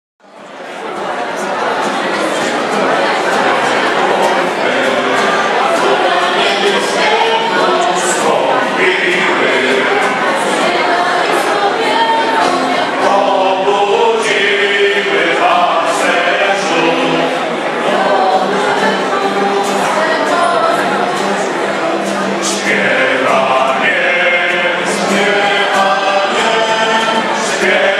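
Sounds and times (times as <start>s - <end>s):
mixed choir singing: 0.4s - 27.9s.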